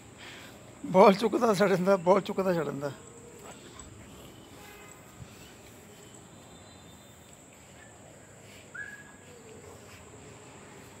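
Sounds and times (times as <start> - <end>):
crickets chirring: 0.6 - 11.0.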